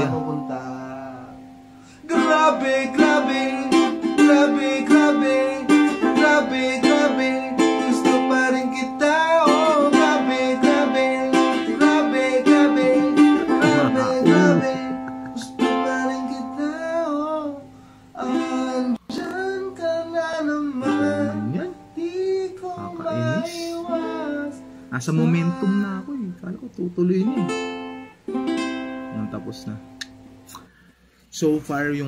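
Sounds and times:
ukulele strumming: 0.0 - 0.9, 2.1 - 17.6, 18.2 - 21.9, 22.5 - 25.6, 27.3 - 30.2
man singing pop ballad: 0.0 - 1.4, 2.0 - 17.6, 18.2 - 26.1.

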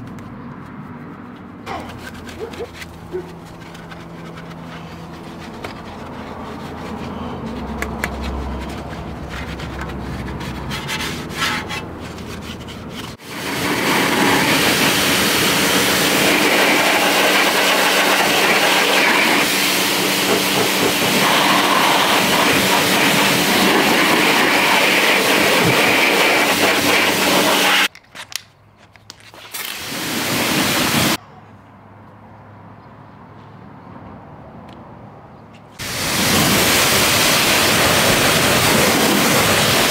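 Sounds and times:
brush scrubbing: 0.8 - 27.9
pressure washer spraying water: 13.2 - 27.9, 29.7 - 31.2, 35.8 - 39.9.

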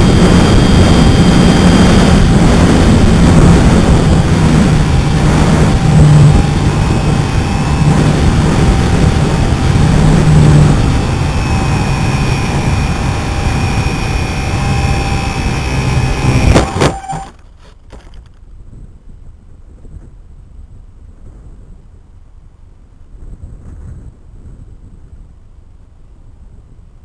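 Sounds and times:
electric motor and propeller whining: 0.0 - 18.3
wind noise: 0.0 - 27.0.

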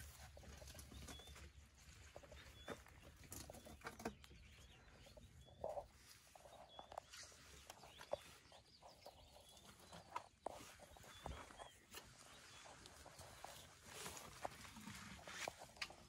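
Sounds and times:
bird chirping: 0.0 - 16.0
soft rustles and clicks: 0.0 - 16.0.

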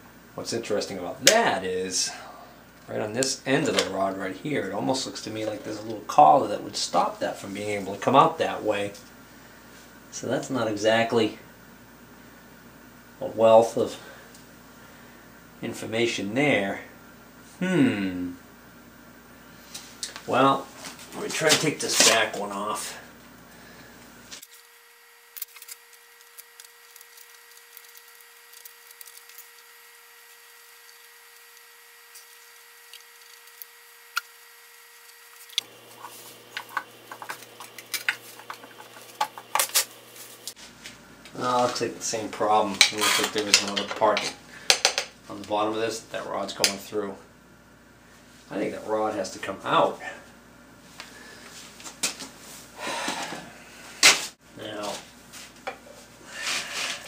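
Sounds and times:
person breathing: 23.5 - 24.0, 44.4 - 44.8, 51.0 - 51.6, 52.8 - 54.0.

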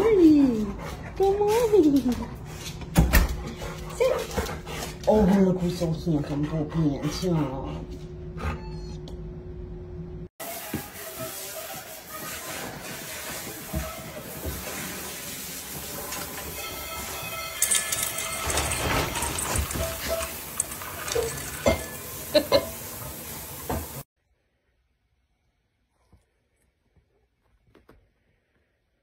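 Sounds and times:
dishes rattling and clinking: 16.2 - 22.9.

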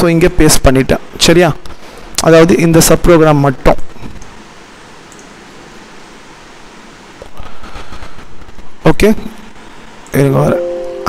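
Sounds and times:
microphone and room hiss: 0.0 - 11.0.

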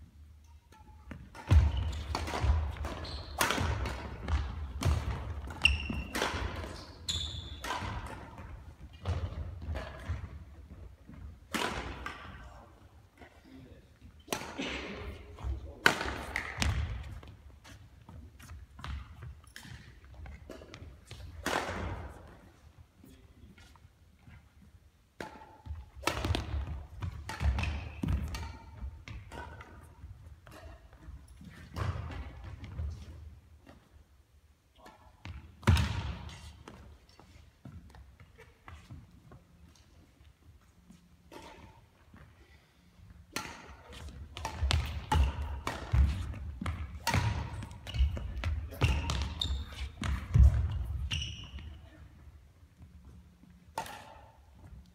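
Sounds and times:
rackets hitting shuttlecock: 0.4 - 12.6, 14.2 - 22.6, 25.1 - 33.9, 34.8 - 39.8, 40.8 - 42.3, 43.0 - 52.2, 52.8 - 54.9.

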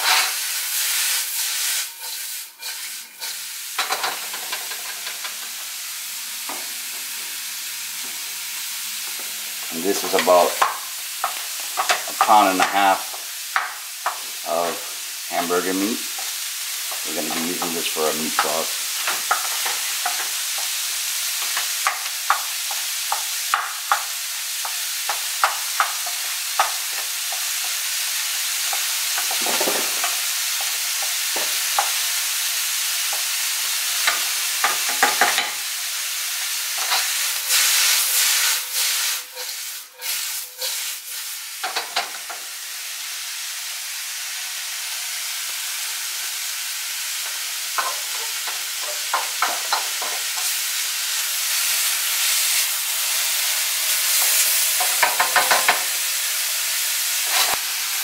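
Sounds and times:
food sizzling in hot oil: 0.0 - 58.0.

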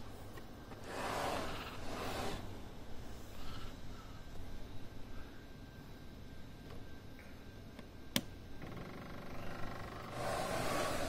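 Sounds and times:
blower motor humming: 8.1 - 11.0.

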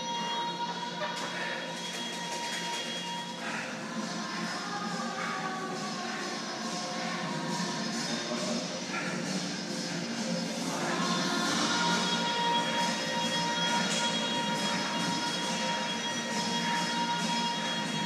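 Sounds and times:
music playing: 0.0 - 18.0.

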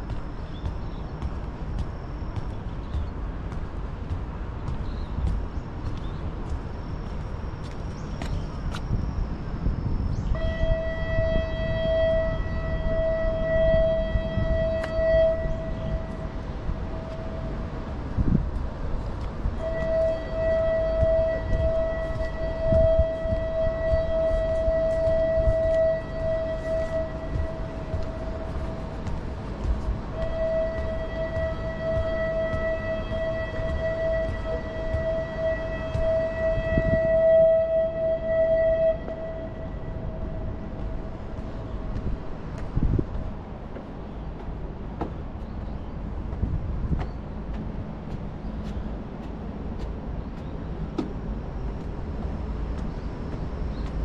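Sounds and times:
low outdoor rumble: 0.0 - 54.0
siren blasts: 10.3 - 17.7, 19.6 - 41.4.

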